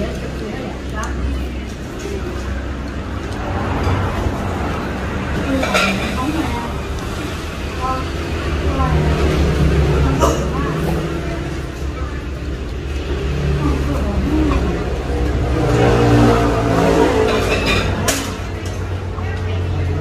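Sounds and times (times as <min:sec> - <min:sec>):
people talking: 0:00.0 - 0:20.0.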